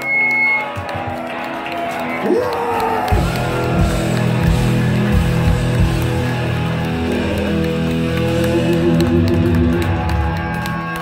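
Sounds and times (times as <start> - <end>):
electric guitar held notes: 3.0 - 11.0.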